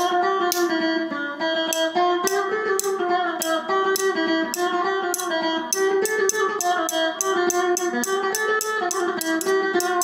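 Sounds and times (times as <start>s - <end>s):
electric saz melody: 0.0s - 10.0s.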